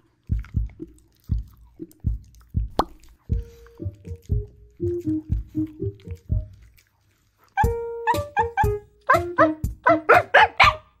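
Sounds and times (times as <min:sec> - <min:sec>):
music with bass line: 0:07.6 - 0:10.3
dog barking: 0:07.6 - 0:11.0.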